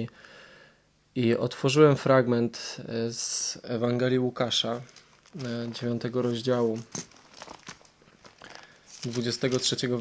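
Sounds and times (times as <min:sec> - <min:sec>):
rustling of book pages: 0:04.4 - 0:10.0.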